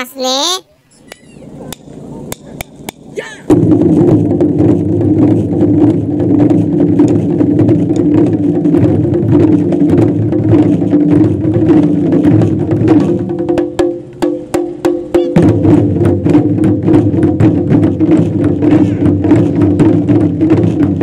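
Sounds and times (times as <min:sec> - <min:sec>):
loud continuous drumming: 0:01.3 - 0:21.0.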